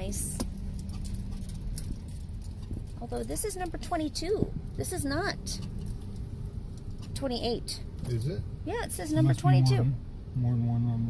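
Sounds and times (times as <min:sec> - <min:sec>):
car engine and tyres rumbling: 0:00.0 - 0:11.0.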